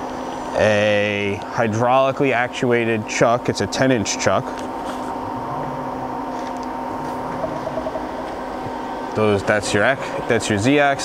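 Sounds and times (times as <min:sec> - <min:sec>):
lathe machine hum: 0:04.1 - 0:11.0.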